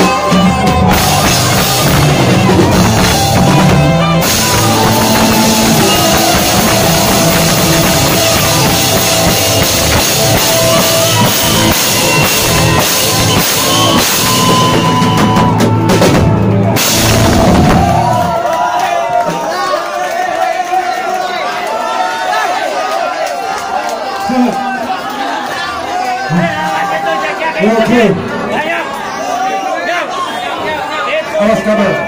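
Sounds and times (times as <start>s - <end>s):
live punk band playing: 0.0s - 19.7s
crowd voices and shouting: 0.0s - 32.0s.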